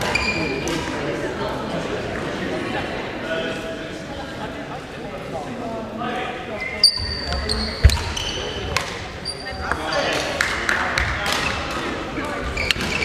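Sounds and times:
sneakers squeaking on wooden floor: 0.0s - 0.6s, 6.6s - 10.3s, 12.4s - 13.0s
echoing voices: 0.0s - 13.0s
rackets hitting shuttlecock: 7.3s - 12.0s, 12.6s - 13.0s.

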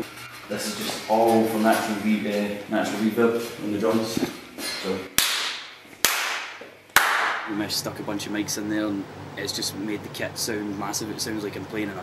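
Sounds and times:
hand claps with long reverb: 5.2s - 7.5s.

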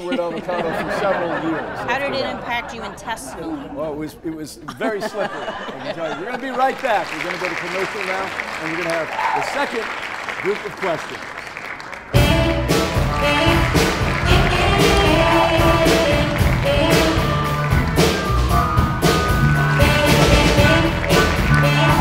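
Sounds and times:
rock band playing: 12.0s - 22.0s.

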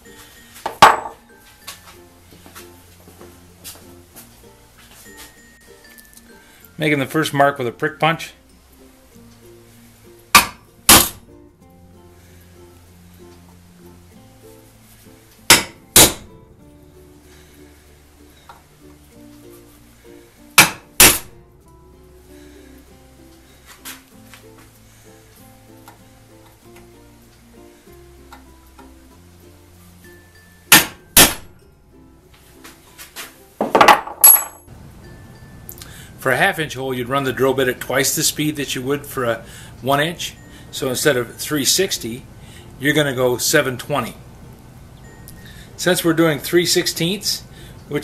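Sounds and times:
quiet background music: 0.0s - 48.0s
hammer tapping punch on steel: 15.5s - 16.3s, 20.6s - 21.3s.

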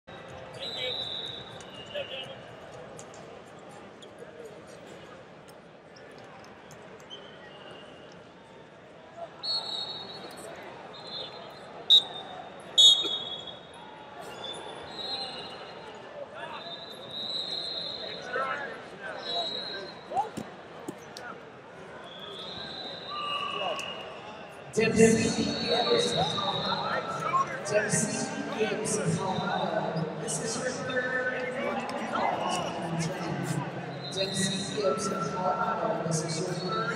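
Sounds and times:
indistinct crowd chatter: 0.0s - 36.9s.

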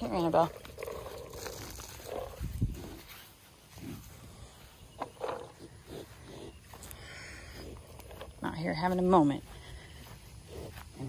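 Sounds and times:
cattle lowing: 0.0s - 11.0s.

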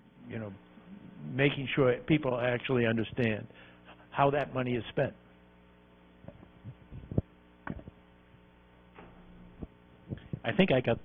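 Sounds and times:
electrical mains hum: 0.0s - 11.0s
microphone handling knocks: 6.2s - 8.0s.

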